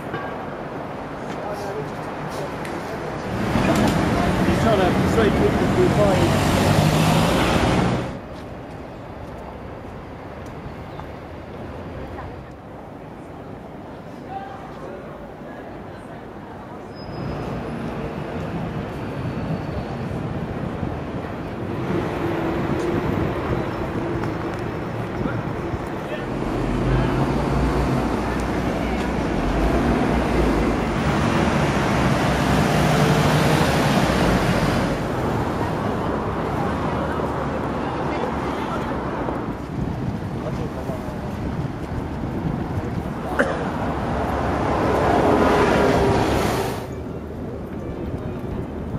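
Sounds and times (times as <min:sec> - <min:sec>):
road traffic passing: 0:00.0 - 0:48.9
voices of passers-by: 0:00.0 - 0:48.9
wind on microphone: 0:39.1 - 0:43.3.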